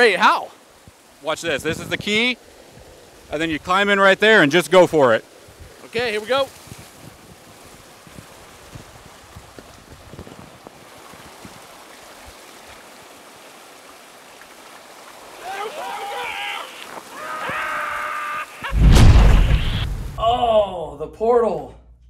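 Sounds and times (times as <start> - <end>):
loud deep burst: 18.7 - 20.4
man's voice: 20.2 - 21.8.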